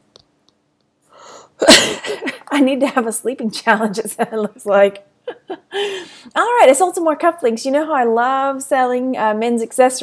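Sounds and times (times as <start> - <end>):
woman sneezing: 1.6 - 2.4.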